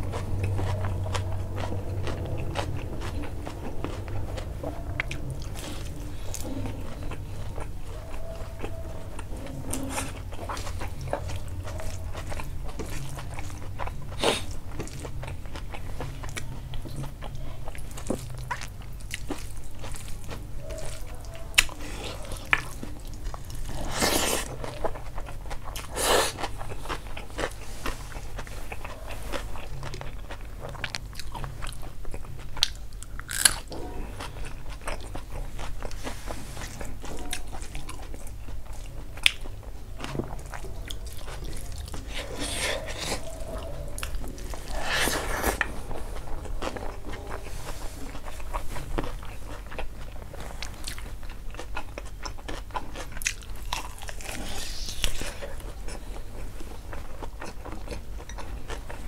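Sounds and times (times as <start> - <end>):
man chewing rice: 0.0 - 59.0.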